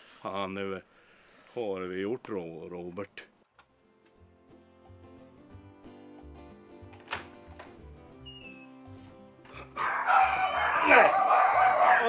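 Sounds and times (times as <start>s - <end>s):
quiet background music: 1.6s - 12.0s
dogs barking: 9.5s - 12.0s.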